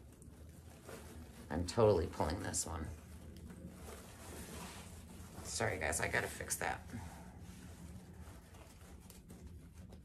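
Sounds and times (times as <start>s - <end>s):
fabric and ribbon rustling: 0.0s - 10.0s
low steady hum: 0.0s - 10.0s.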